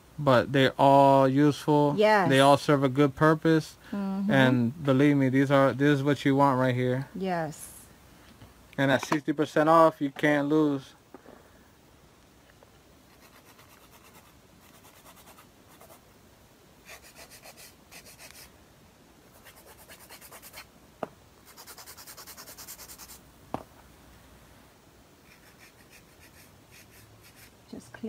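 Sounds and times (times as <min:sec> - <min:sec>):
nail file rasping: 0:13.1 - 0:16.0, 0:16.8 - 0:18.5, 0:19.4 - 0:20.7, 0:21.5 - 0:23.2, 0:25.2 - 0:27.5.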